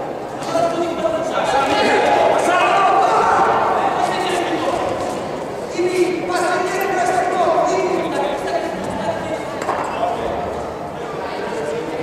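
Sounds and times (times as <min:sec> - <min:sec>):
voices calling out echoing: 0:00.0 - 0:12.0.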